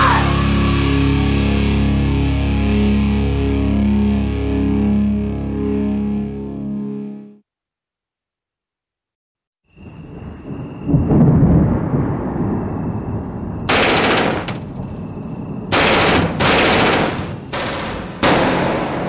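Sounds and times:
loud explosion blasts: 0:10.9 - 0:14.9, 0:15.6 - 0:19.0
rumbling gunfire: 0:13.7 - 0:15.0, 0:15.7 - 0:19.0.

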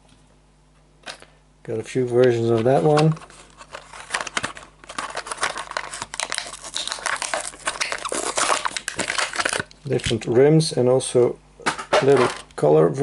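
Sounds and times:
plastic blister pack crinkling: 0:02.2 - 0:10.3.

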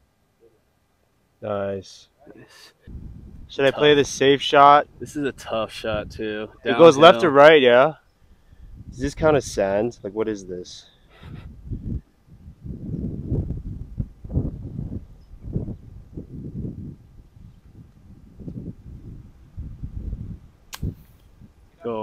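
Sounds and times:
wind rumble on microphone: 0:02.9 - 0:06.7, 0:08.4 - 0:10.2, 0:11.1 - 0:21.9.

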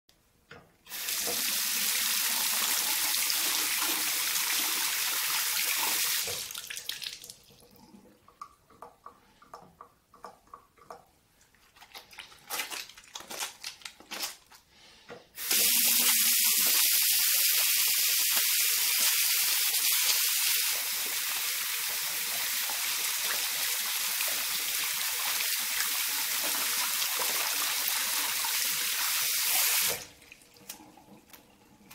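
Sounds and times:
tap running into washbasin: 0:00.5 - 0:07.7
hands lathering soap: 0:08.4 - 0:14.7.

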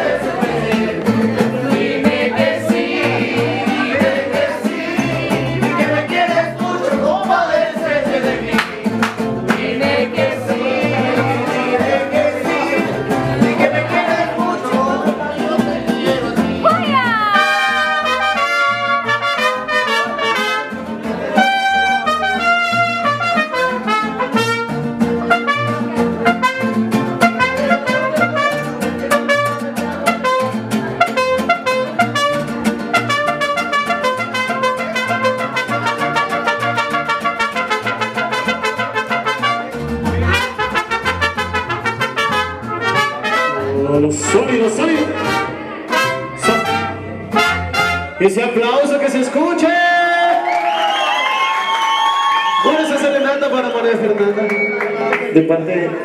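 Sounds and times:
strummed guitars: 0:00.0 - 0:48.6
trumpets playing: 0:16.9 - 0:48.4.

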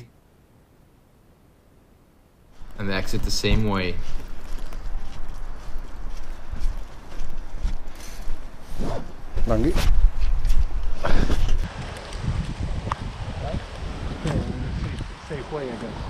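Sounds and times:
footsteps on pavement: 0:02.6 - 0:15.1.

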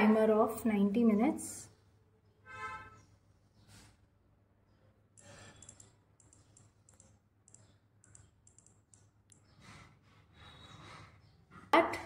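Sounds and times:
phone scroll wheel ticks: 0:05.2 - 0:09.6.

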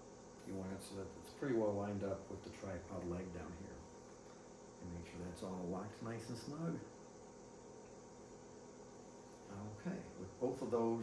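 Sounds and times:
faint steady hiss: 0:00.0 - 0:11.0
thin high whine: 0:00.0 - 0:11.0.

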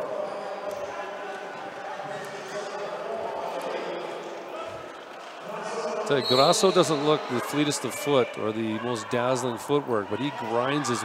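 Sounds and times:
murmur of crowd voices: 0:00.0 - 0:11.0.

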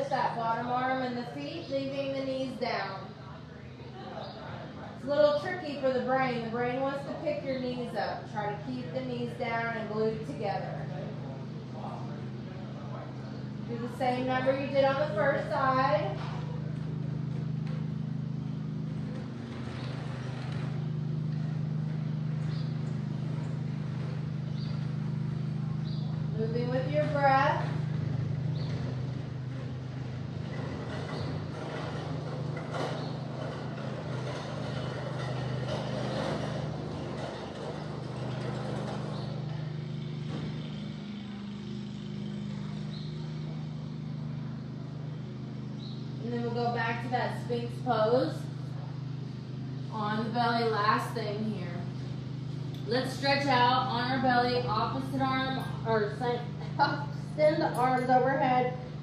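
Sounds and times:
low mechanical hum: 0:00.0 - 0:59.0.

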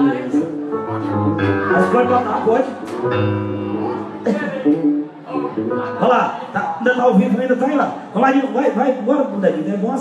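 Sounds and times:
bass guitar line: 0:00.0 - 0:06.8
held keyboard chords: 0:00.0 - 0:06.8.

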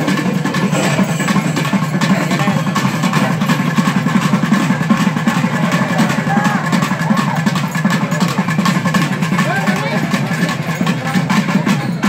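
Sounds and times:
fast festival drumming: 0:00.0 - 0:12.0
crowd shouting: 0:05.4 - 0:07.6.

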